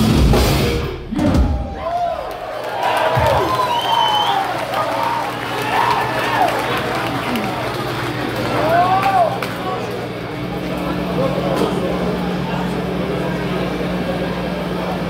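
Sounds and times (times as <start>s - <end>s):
punk band playing loud: 0.0s - 1.8s
audience cheering and shouting: 0.9s - 11.4s
steady low hum: 6.6s - 15.0s.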